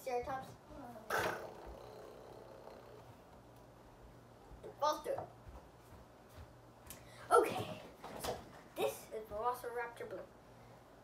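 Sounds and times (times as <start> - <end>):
person clearing throat: 1.1 - 2.0.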